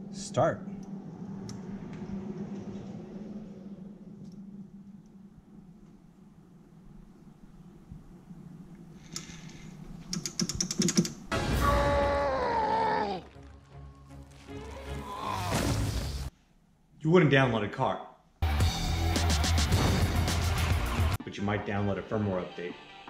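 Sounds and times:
quick clicks: 9.0 - 11.3
loud sound falling in pitch: 11.3 - 13.2.

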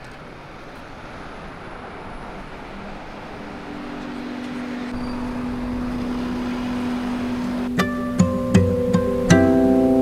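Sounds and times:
bus approaching: 0.0 - 10.0
passing vehicles rushing: 0.0 - 10.0.

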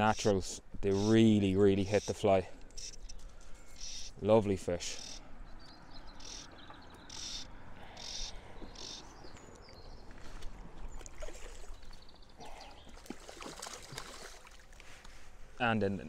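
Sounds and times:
small water splashes: 9.6 - 15.1.

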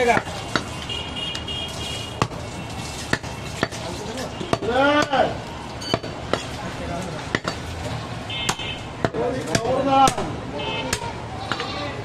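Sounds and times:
knife chopping meat on wood: 3.0 - 3.8, 4.5 - 5.3, 7.2 - 7.7, 8.5 - 10.3.

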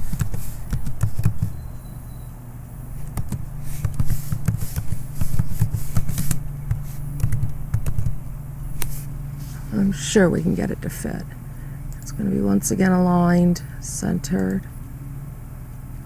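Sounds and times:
computer keyboard typing: 0.0 - 1.6, 3.0 - 8.2
steady low hum: 0.0 - 16.0.

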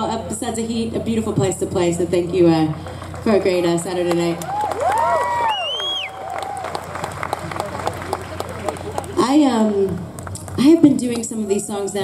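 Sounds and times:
scattered clapping: 2.7 - 11.4
audience whooping and cheering: 4.4 - 9.2.

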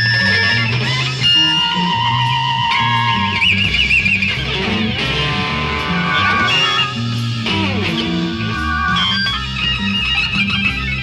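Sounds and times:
guitar note with vibrato: 0.0 - 10.3
rock band jamming: 0.0 - 11.0.

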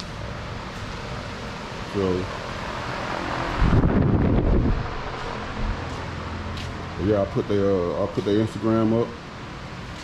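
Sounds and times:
low rumbling noise: 0.0 - 8.2
steady hum: 0.0 - 10.0.

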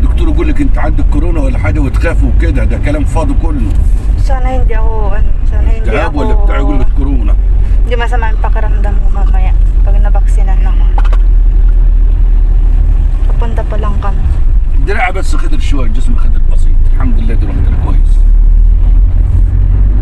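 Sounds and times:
person talking: 0.0 - 7.4
car engine rumble inside cabin: 0.0 - 20.0
road noise: 0.0 - 20.0.

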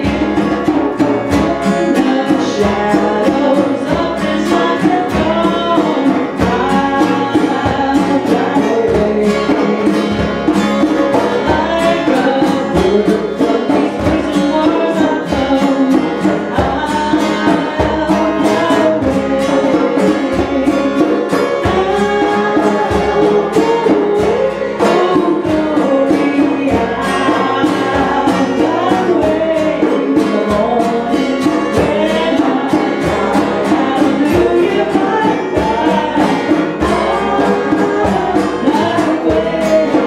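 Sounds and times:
strummed acoustic guitar: 0.0 - 40.0
woman singing: 0.0 - 40.0.

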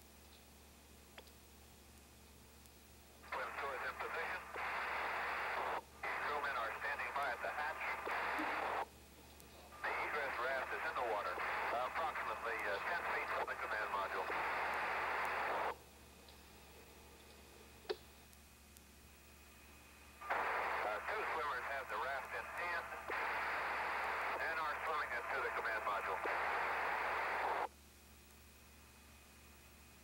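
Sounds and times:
two-way radio voice in static: 3.3 - 8.8, 9.8 - 15.7, 20.3 - 27.7.

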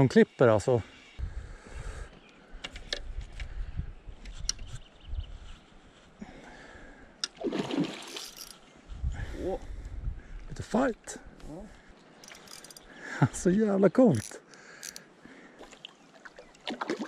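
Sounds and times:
fish splashing in water: 7.4 - 8.3, 15.6 - 17.0.

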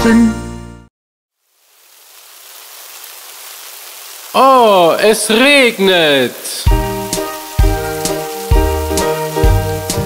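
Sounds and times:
rain falling: 1.3 - 10.0.

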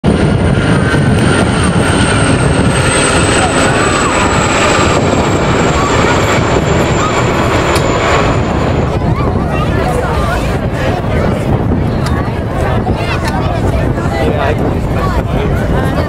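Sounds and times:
helicopter and aircraft engine noise: 0.0 - 16.0
high whine falling in pitch: 0.1 - 10.8.

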